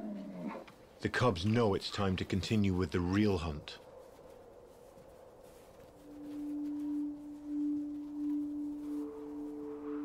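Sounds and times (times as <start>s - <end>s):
sustained bowl-like tones: 6.0s - 10.0s.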